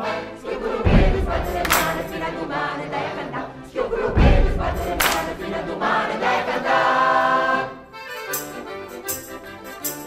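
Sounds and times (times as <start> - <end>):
mixed choir singing: 0.0 - 8.0.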